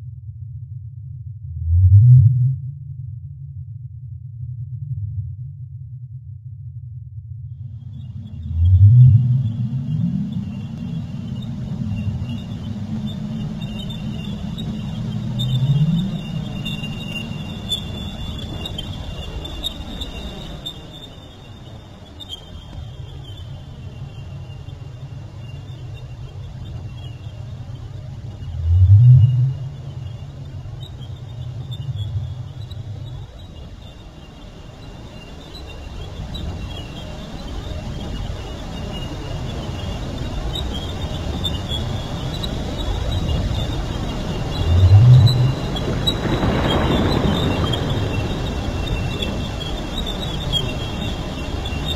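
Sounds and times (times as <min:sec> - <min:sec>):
deep rumbling drone: 0:00.0 - 0:51.9
thin steady high tone: 0:07.9 - 0:45.8.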